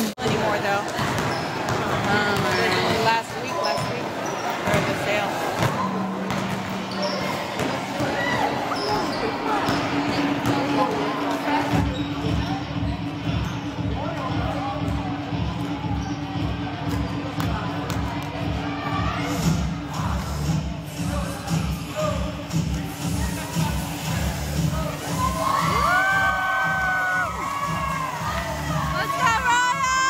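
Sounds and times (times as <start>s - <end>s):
people chattering: 0.0s - 30.0s
basketballs bouncing on wooden floor: 0.2s - 4.0s, 4.6s - 8.4s.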